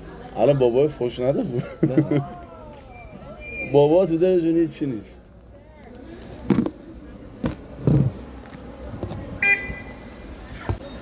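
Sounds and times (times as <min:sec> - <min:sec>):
street background noise: 0:00.0 - 0:11.0
short high beep: 0:02.9 - 0:03.8.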